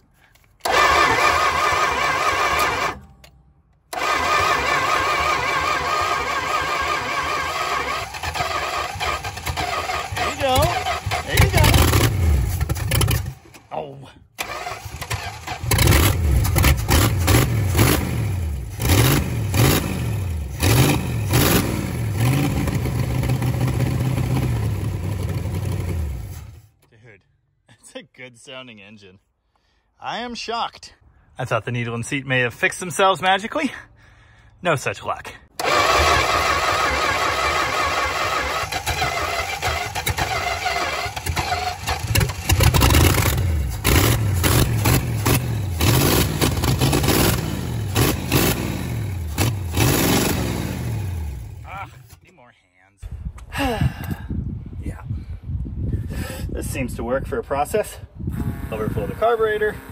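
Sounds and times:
car engine cranking on starter: 0:00.6 - 0:13.7, 0:14.4 - 0:18.1, 0:35.5 - 0:51.7.

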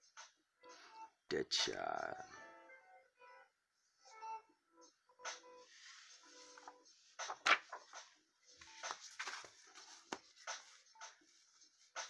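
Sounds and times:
faint background music: 0:00.0 - 0:12.0
paper comic books rustling and sliding: 0:05.6 - 0:12.0.

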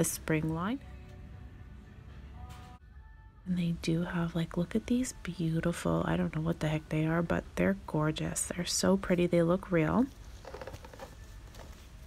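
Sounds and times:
artificial flowers rustling: 0:10.0 - 0:12.0.

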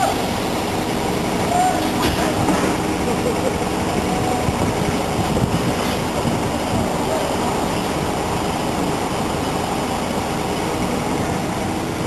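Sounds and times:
crane diesel engine running: 0:00.0 - 0:12.0
voices calling: 0:01.0 - 0:05.1.

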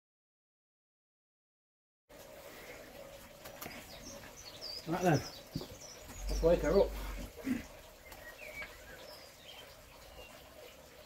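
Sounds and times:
high bird chirps: 0:03.9 - 0:07.3.

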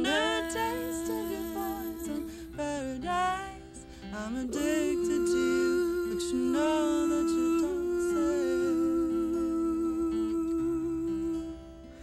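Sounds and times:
women humming in harmony: 0:00.0 - 0:03.6, 0:04.2 - 0:11.6
acoustic guitar: 0:00.0 - 0:12.0.

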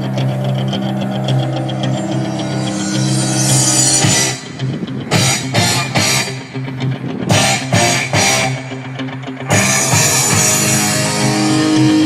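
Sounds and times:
music through car speakers: 0:00.0 - 0:12.0.

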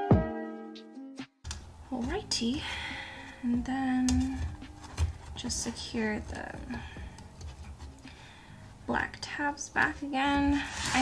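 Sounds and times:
handling taps: 0:03.6 - 0:08.2.

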